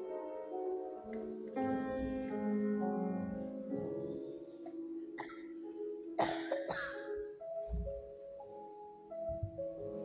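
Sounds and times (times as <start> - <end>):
grand piano notes: 0.0 - 10.0
person coughing: 6.2 - 7.1.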